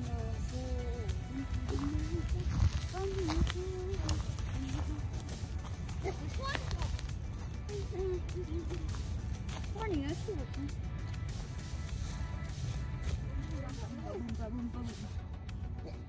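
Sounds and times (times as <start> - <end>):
child's sing-song voice: 0.0 - 5.3, 6.0 - 7.0, 7.6 - 9.0
background music: 0.0 - 16.0.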